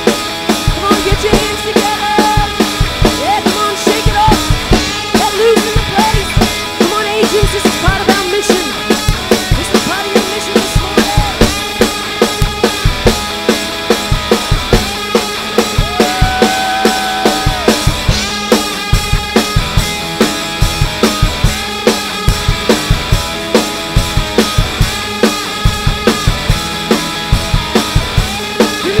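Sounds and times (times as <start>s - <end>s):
drum kit beat: 0.0s - 29.0s
guitars and keyboard: 0.0s - 29.0s
person singing: 0.8s - 2.6s, 3.2s - 4.6s, 28.7s - 29.0s.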